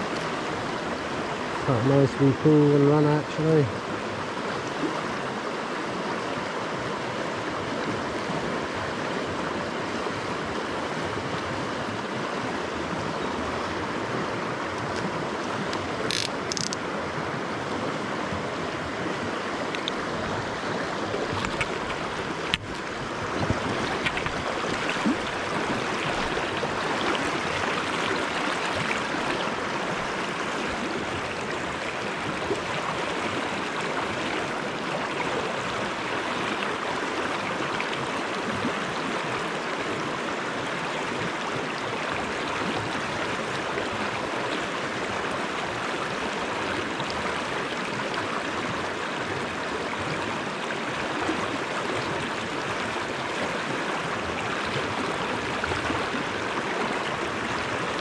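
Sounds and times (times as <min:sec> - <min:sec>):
river rushing over stones: 0:00.0 - 0:58.0.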